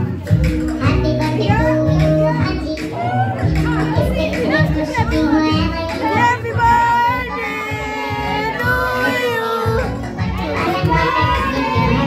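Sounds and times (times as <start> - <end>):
music playing: 0.0 - 12.0
people talking and singing: 0.0 - 12.0.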